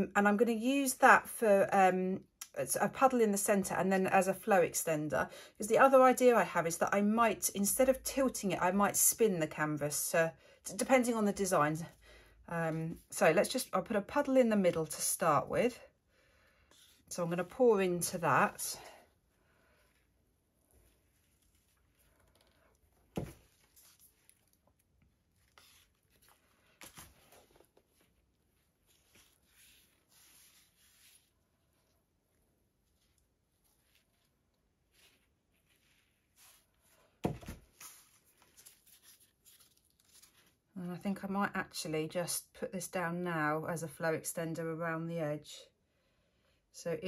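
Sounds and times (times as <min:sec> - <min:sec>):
board thumping on table: 0:37.2 - 0:37.6.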